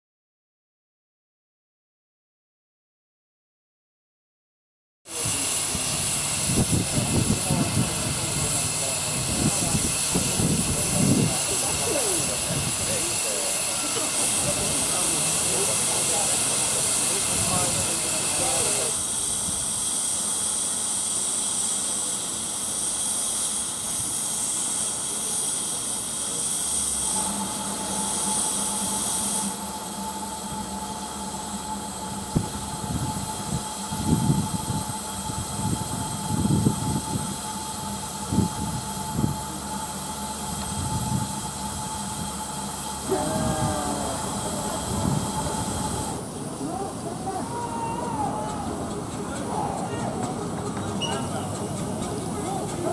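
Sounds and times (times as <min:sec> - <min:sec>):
steam hissing: 0:05.1 - 0:52.9
steady hum: 0:26.9 - 0:52.9.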